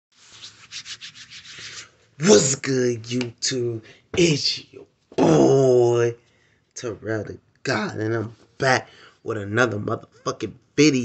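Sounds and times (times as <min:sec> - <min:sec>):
fingers rubbing phone microphone: 0:00.2 - 0:02.0.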